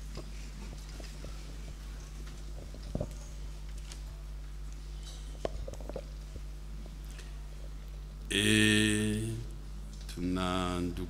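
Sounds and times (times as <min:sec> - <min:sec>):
low mains hum: 0:00.0 - 0:11.0.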